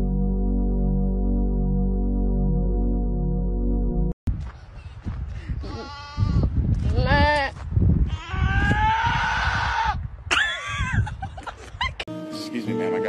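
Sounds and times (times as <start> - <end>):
goat bleating: 5.6 - 7.5, 8.1 - 10.0.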